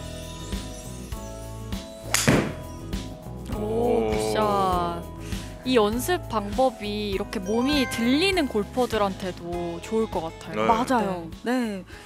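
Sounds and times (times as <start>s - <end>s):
background music: 0.0s - 12.0s
golf club hitting ball: 2.1s - 2.7s.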